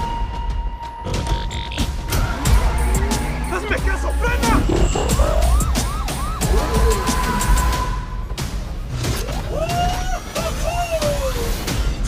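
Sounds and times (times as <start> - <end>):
deep bass rumble: 2.0 - 7.7
police siren yelping: 2.2 - 8.1.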